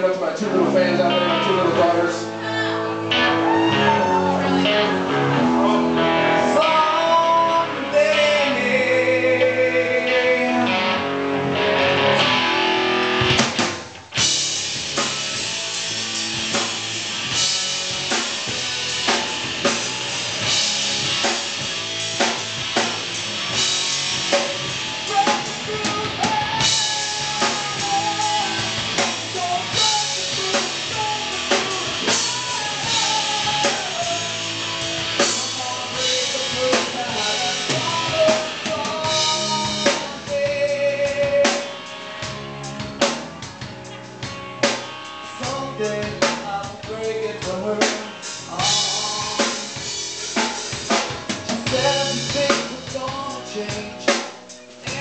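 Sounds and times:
live band playing: 0.0 - 55.0.

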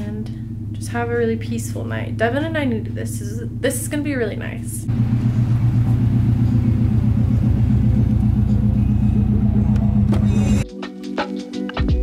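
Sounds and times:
car engine idling: 0.0 - 10.6.

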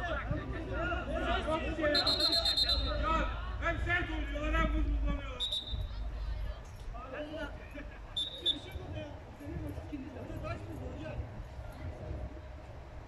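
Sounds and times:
men calling and shouting: 0.0 - 5.7
referee's whistle: 1.9 - 3.0, 5.4 - 5.9, 8.2 - 8.7.

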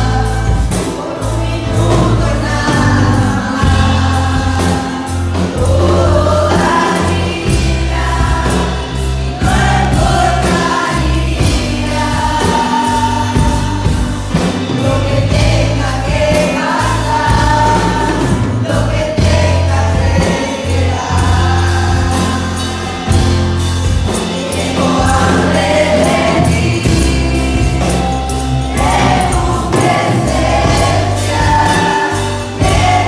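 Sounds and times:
congregation singing: 0.0 - 33.0
drum kit: 0.0 - 33.0
held bass notes: 0.0 - 33.0.

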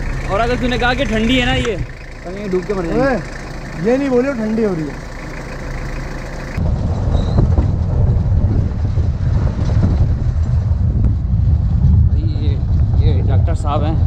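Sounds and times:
jeep engine and ride rumble: 0.0 - 14.0.

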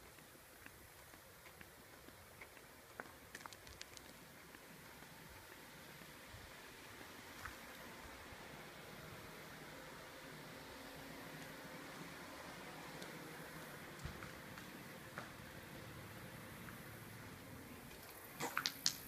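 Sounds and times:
faint outdoor hiss: 0.0 - 19.0.

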